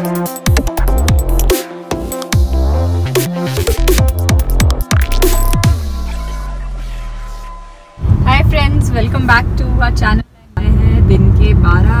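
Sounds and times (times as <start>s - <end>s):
car engine and road rumble: 5.6s - 12.0s
woman talking: 8.2s - 12.0s.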